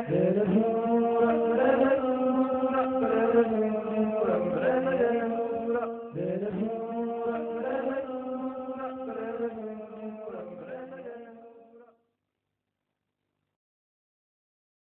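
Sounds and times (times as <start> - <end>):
person singing long held notes: 0.0 - 11.8.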